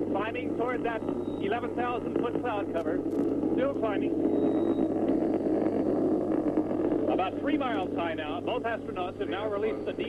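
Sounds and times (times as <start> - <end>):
low mains hum: 0.0 - 10.0
rocket rumbling roar: 0.0 - 10.0.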